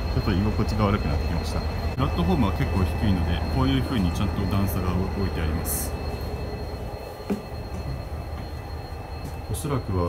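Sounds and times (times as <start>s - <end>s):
diesel train engines rumbling: 0.0s - 10.0s.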